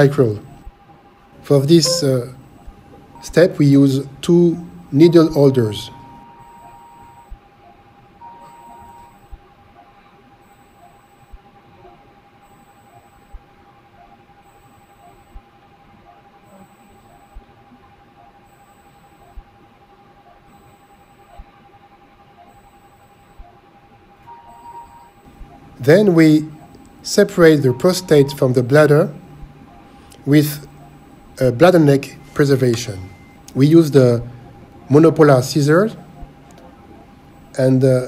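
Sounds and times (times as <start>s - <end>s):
steady thin electronic tone: 1.4s - 38.0s.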